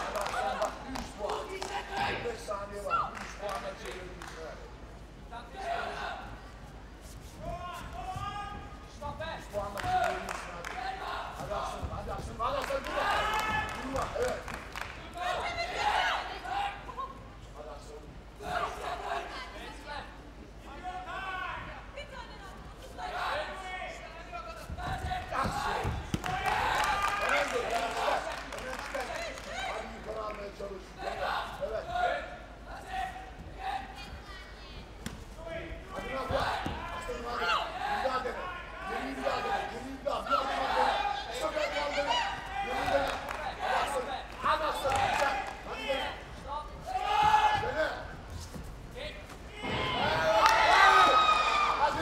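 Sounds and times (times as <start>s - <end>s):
coaches and crowd shouting: 0.0s - 3.2s, 7.4s - 14.4s, 15.0s - 17.2s, 18.4s - 30.1s, 30.9s - 34.8s, 35.4s - 48.2s, 49.0s - 52.0s.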